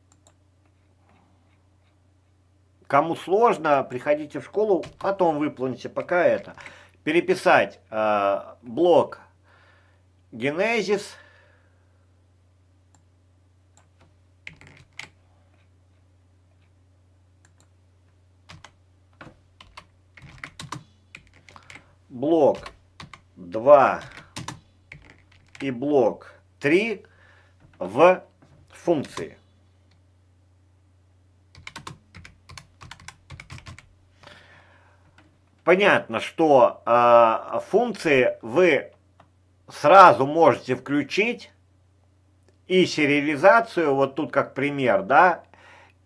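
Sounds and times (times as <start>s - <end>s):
faint low hum: 0.0s - 46.0s
keyboard typing: 4.8s - 5.2s, 13.8s - 15.7s, 18.5s - 21.9s, 22.5s - 23.2s, 23.9s - 25.6s, 31.5s - 33.9s.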